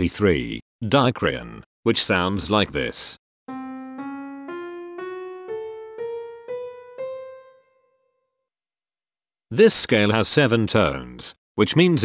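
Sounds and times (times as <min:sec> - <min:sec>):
piano playing ascending scale: 0:03.5 - 0:08.2.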